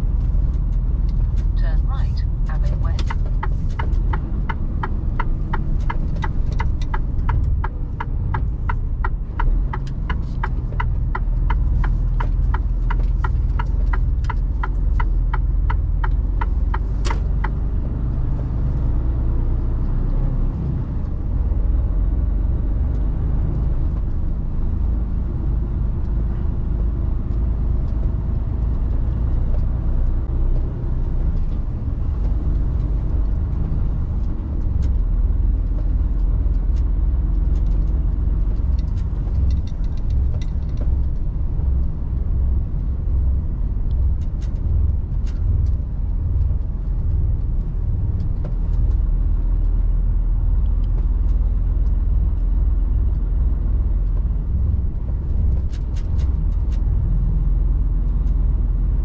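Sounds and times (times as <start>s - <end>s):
truck engine and road rumble: 0.0s - 59.0s
faint clicks and rattles: 27.2s - 59.0s.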